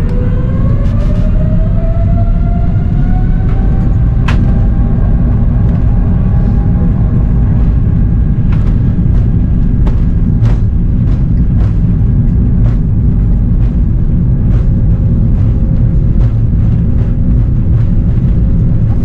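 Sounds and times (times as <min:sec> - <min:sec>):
jet engine rumble and whine: 0:00.0 - 0:19.0.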